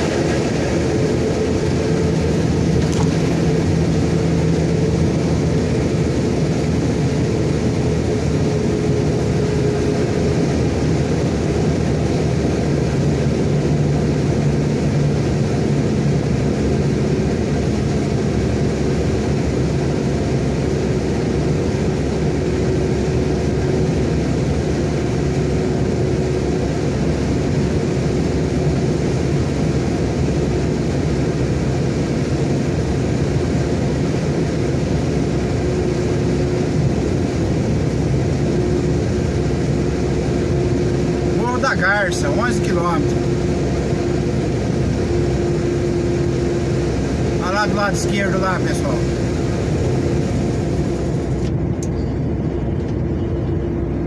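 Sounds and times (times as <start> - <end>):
truck engine humming: 0.0 - 54.0.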